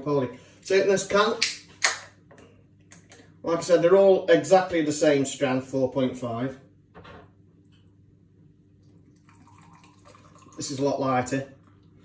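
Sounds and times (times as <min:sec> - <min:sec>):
beer pouring into glass: 0:09.1 - 0:11.4.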